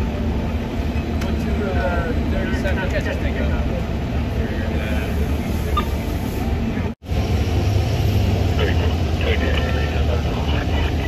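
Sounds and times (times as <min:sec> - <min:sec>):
constant hum: 0:00.0 - 0:11.0
vehicle engines idling: 0:00.0 - 0:11.0.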